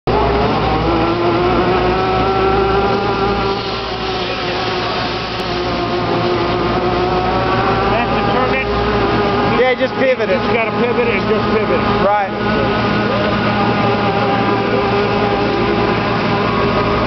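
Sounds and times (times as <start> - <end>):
air-driven motor whine: 0.1 - 17.0.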